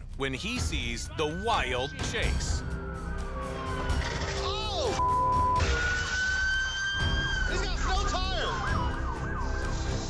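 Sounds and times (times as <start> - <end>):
police sirens wailing: 1.4 - 10.0.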